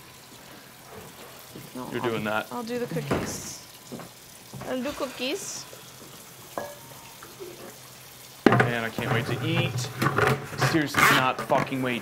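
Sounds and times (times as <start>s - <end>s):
utensil clinking metal bowl: 6.5s - 7.8s.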